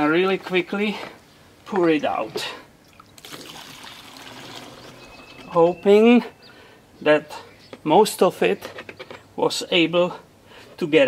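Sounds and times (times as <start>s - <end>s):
gasoline trickling into can: 2.8s - 5.5s.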